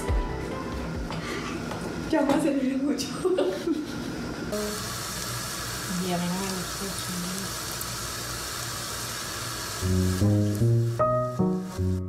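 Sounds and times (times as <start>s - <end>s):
light background music: 0.0s - 1.7s, 9.8s - 12.0s
woman chuckling: 3.1s - 4.3s
food frying in hot oil: 4.5s - 12.0s.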